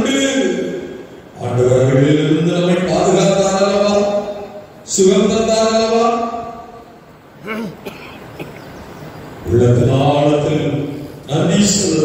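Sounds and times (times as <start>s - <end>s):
man praying into a microphone: 0.0s - 6.7s, 9.4s - 12.0s.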